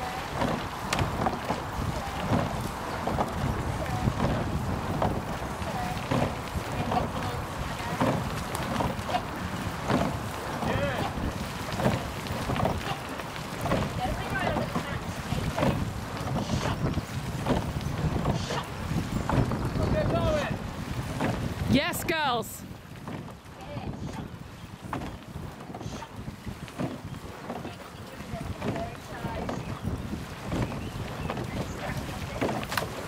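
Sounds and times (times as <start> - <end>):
oars working the water: 0.0 - 33.0
wind on microphone: 0.0 - 33.0.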